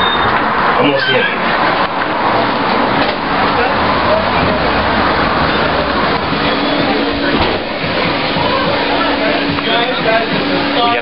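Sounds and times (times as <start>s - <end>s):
murmur of voices: 0.6s - 11.0s.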